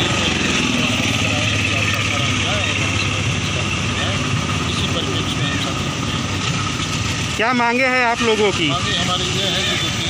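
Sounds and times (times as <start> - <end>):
people chattering: 0.0 - 10.0
vehicle engine idling: 0.0 - 10.0.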